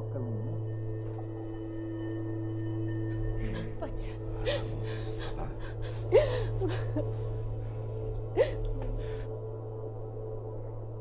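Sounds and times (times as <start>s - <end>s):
low steady drone: 0.0s - 11.0s
woman sobbing: 3.4s - 7.6s, 8.2s - 9.0s.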